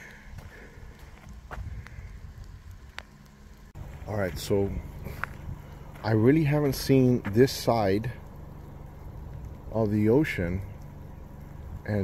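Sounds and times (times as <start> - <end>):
low wind rumble on microphone: 0.0 - 7.3, 8.0 - 12.0.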